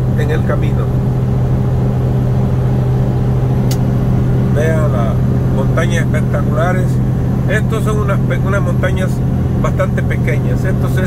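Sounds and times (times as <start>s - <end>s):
road noise: 0.0s - 11.0s
truck diesel engine drone: 0.0s - 11.0s.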